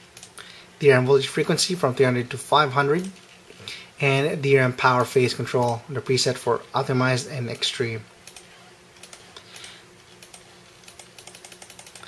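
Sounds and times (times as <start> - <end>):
computer keyboard clicks: 8.3 - 12.0.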